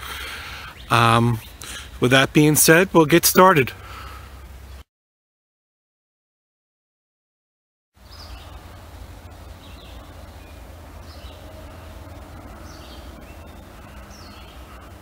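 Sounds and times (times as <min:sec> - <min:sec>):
bird singing: 0:00.0 - 0:03.6, 0:08.0 - 0:15.0
low steady rumble: 0:08.0 - 0:15.0.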